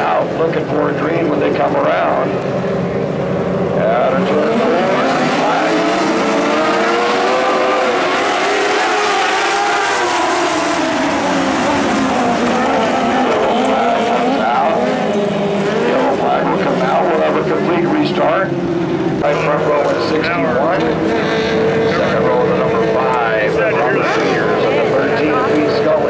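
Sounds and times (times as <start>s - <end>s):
race car engines revving: 0.0s - 26.0s.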